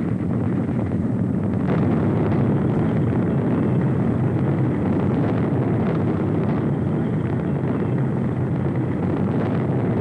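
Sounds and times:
rocket engines roaring: 0.0 - 10.0.

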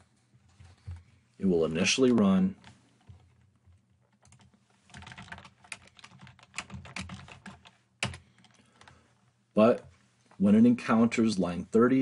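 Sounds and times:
computer keyboard typing: 3.0 - 9.0.

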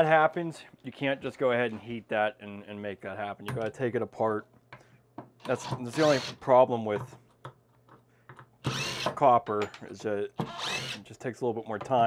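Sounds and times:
cordless drill running: 5.9 - 6.4, 8.6 - 9.2, 10.4 - 11.0.

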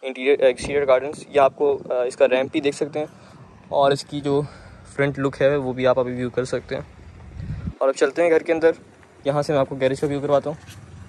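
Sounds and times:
man speaking: 0.0 - 7.0, 7.8 - 10.6
wind rumble on microphone: 0.3 - 7.8.

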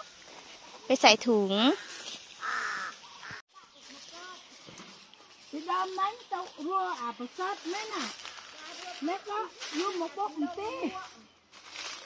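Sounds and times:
faint outdoor background: 0.0 - 12.0
harsh caw-like call: 1.8 - 3.4.

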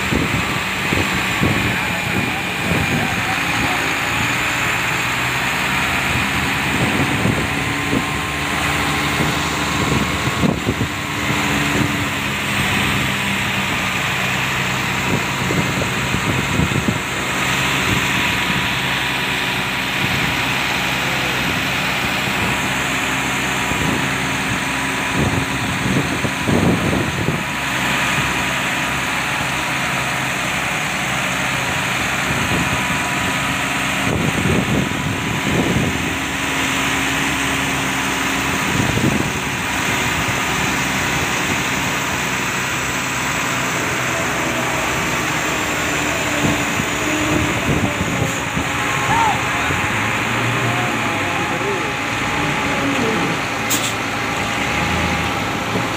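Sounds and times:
truck diesel engine idling: 0.0 - 55.9.

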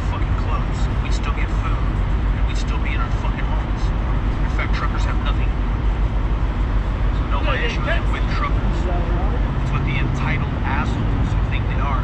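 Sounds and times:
idling trucks and traffic rumble: 0.0 - 12.0.

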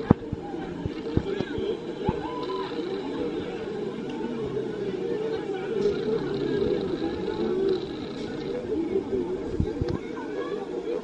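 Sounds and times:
crowd chattering and calling out: 0.0 - 11.0.

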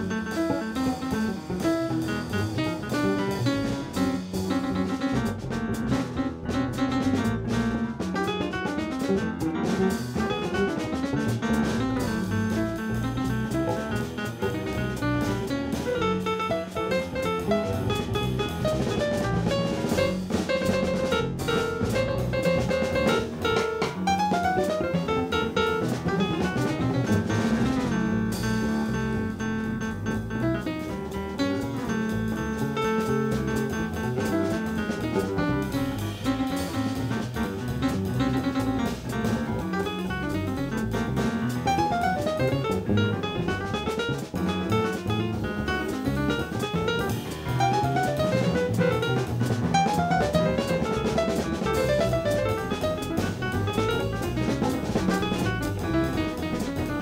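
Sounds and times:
drum kit with cymbals: 0.0 - 57.0
grand piano: 0.0 - 57.0
plucked bass guitar: 0.0 - 57.0.

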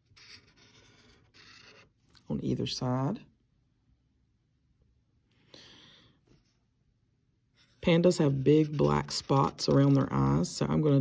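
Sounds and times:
marker scratching on paper: 0.0 - 2.0.

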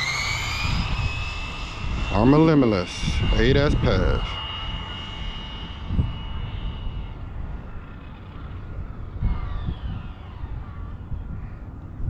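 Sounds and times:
rc car motor whine: 0.0 - 12.0
steady low rumble: 0.0 - 12.0.

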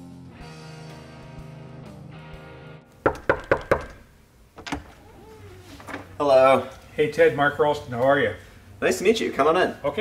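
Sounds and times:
background guitar music: 0.0 - 3.0
knuckle knocks on a door: 3.0 - 4.0.

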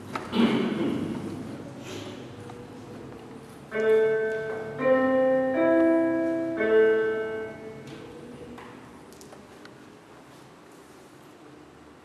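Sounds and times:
piano notes: 3.6 - 8.6.

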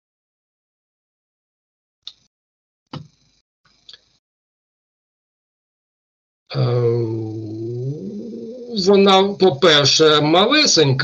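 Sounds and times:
man speaking: 6.5 - 11.0
man's drawn-out hesitation sound: 6.5 - 11.0.

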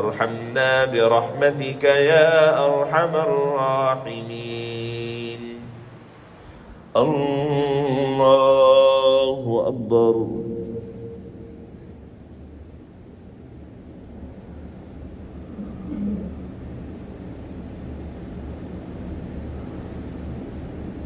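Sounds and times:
low steady rumble: 0.0 - 21.0
short low sound: 10.2 - 12.3.

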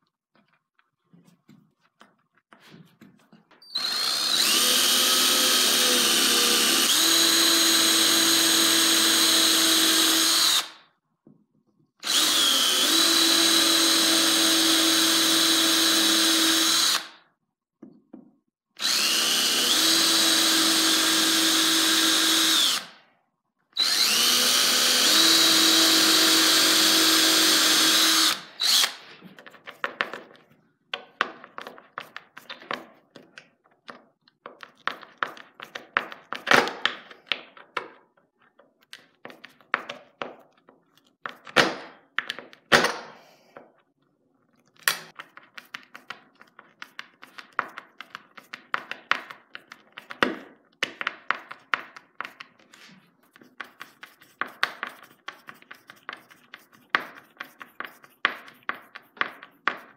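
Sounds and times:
drill whining into wood: 3.6 - 10.8, 12.0 - 17.2, 18.8 - 23.0, 23.8 - 29.1.

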